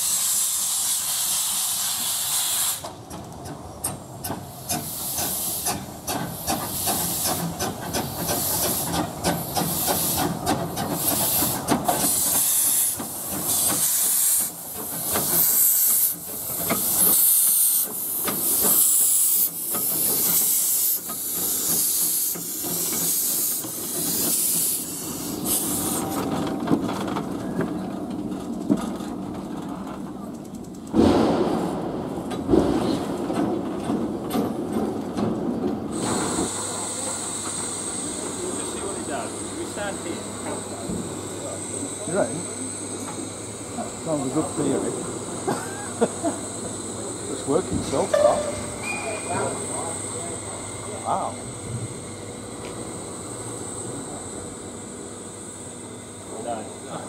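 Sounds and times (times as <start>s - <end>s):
steam locomotive hissing: 0.0s - 30.2s, 35.8s - 57.0s
loud thump: 31.0s - 33.1s.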